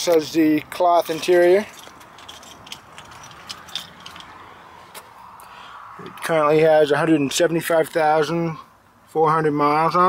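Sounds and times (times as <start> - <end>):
light clicks and rattles: 0.0 - 4.4.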